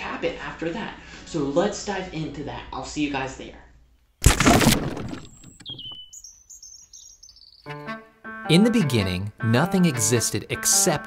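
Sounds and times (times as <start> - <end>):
high bird chirps: 5.5 - 7.7
falling bird whistle: 5.6 - 7.7.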